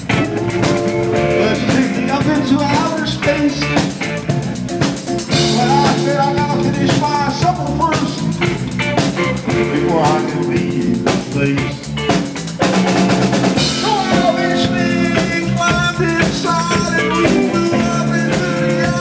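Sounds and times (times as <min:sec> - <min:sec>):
bass guitar: 0:00.0 - 0:19.0
drum kit: 0:00.0 - 0:19.0
electric guitars: 0:00.0 - 0:19.0.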